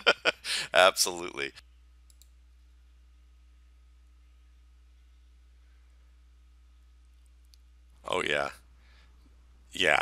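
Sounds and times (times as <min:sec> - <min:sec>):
low electrical hum: 0:00.0 - 0:10.0
computer mouse clicks: 0:02.1 - 0:02.4.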